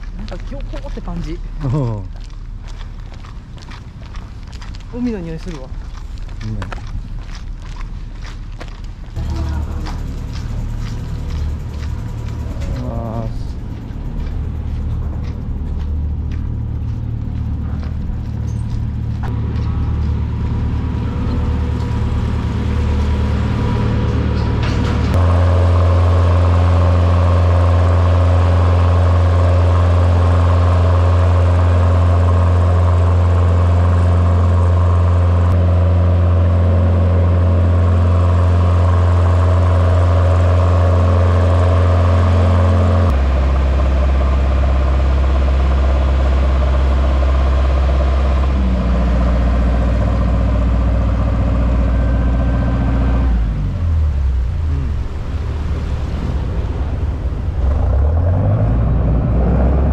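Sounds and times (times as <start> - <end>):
ferry engine drone: 0.0 - 59.9
water rushing along hull: 47.1 - 59.9.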